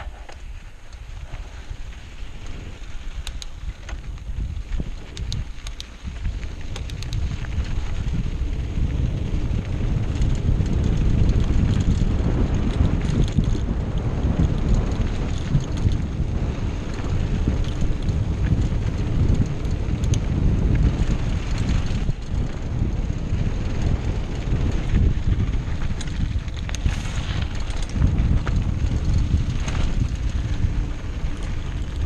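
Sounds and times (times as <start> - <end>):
bike clicks and rattles: 0.0 - 32.0
tyres rolling on dirt: 0.0 - 32.0
wind buffeting microphone: 0.0 - 32.0.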